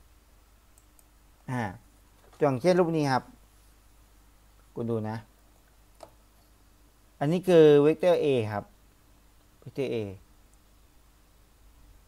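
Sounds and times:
low steady hum: 0:00.0 - 0:12.0
computer mouse clicks: 0:00.7 - 0:01.2.

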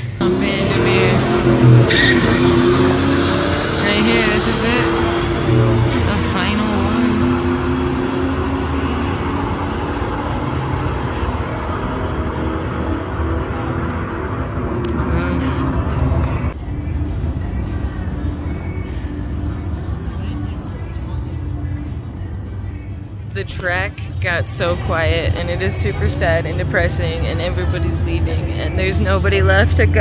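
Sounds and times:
car engine at full throttle: 0:00.0 - 0:30.0.

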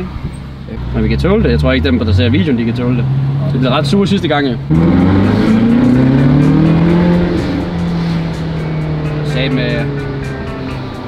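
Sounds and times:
sports car engine accelerating: 0:00.1 - 0:11.0.

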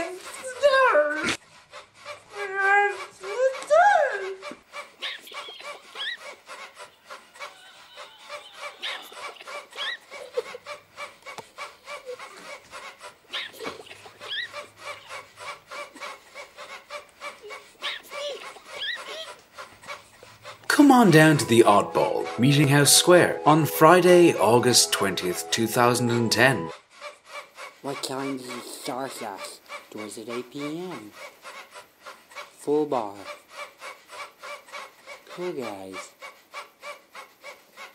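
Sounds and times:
fast rasping rhythm: 0:08.2 - 0:26.8
man making squeaky vocal noises: 0:20.7 - 0:26.7
person speaking voice-over: 0:20.7 - 0:26.7.

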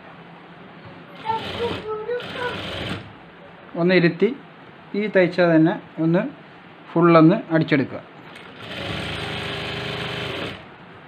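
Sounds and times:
sewing machine running: 0:01.2 - 0:03.1, 0:08.3 - 0:10.7.

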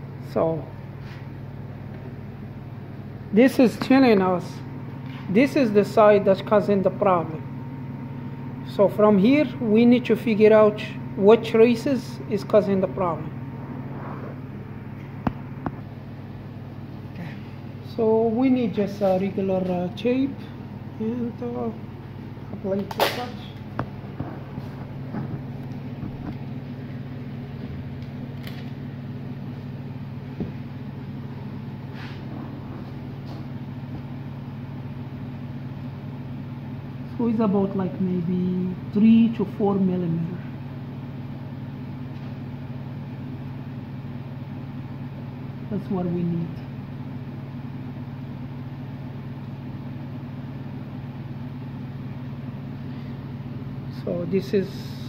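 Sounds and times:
steady low hum: 0:00.0 - 0:55.0.

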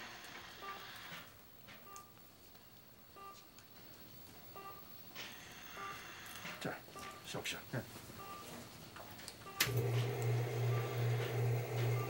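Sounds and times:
heart monitor beeping: 0:00.3 - 0:02.2, 0:03.1 - 0:03.6, 0:04.5 - 0:07.4, 0:08.1 - 0:08.7, 0:09.4 - 0:12.0.

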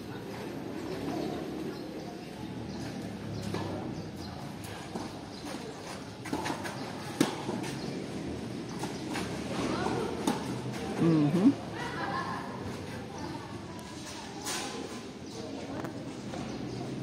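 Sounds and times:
faint background murmur: 0:00.0 - 0:17.0
tennis ball bounces: 0:06.2 - 0:07.8.

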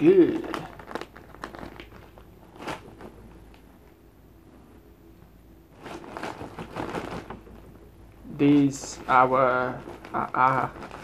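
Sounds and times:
crackling and crunching: 0:00.0 - 0:04.0, 0:05.7 - 0:11.0.

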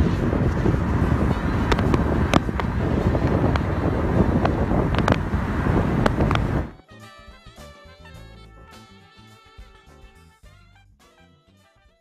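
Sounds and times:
car road noise: 0:00.0 - 0:06.8
wind buffeting microphone: 0:00.0 - 0:06.8.

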